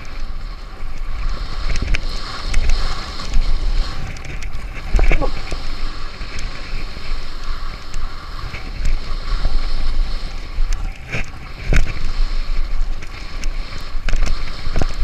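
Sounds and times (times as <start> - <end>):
bike tyre noise on dirt: 0.0 - 15.0
wind rushing over microphone: 0.0 - 15.0
bike rattles and knocks: 10.3 - 15.0.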